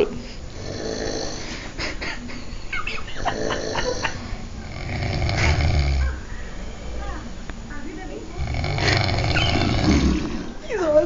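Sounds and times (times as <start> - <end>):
man snoring: 0.5 - 1.6, 3.2 - 6.0, 8.4 - 10.5.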